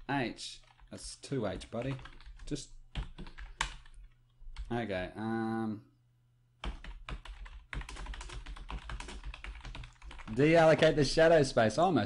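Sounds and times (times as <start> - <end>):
typing on computer keyboard: 1.6 - 4.7, 6.6 - 10.9.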